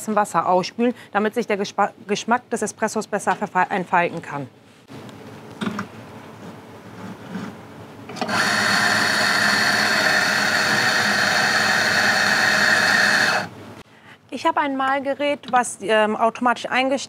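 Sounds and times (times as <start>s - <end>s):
coffee grinder grinding beans: 8.1s - 13.6s.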